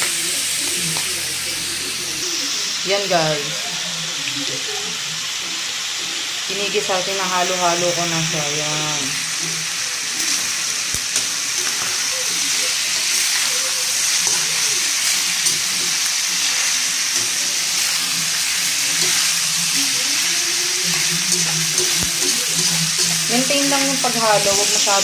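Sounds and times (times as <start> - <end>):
meat sizzling in hot oil: 0.0 - 25.0
spatula scraping a pan: 11.6 - 25.0.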